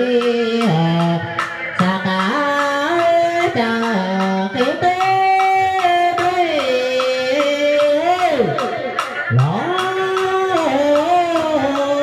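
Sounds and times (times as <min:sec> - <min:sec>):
percussion knocks: 0:00.0 - 0:12.0.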